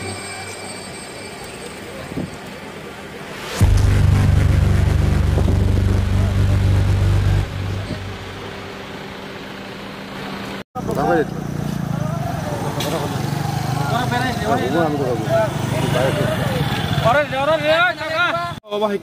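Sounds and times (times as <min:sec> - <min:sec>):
road traffic: 0:00.0 - 0:19.0
vehicle engine running: 0:03.3 - 0:14.4
people's voices: 0:10.8 - 0:19.0.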